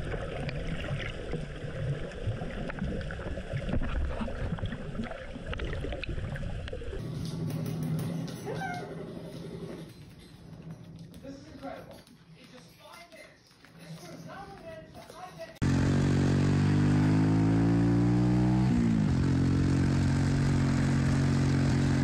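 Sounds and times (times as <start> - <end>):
underwater low rumble: 0.0 - 7.0.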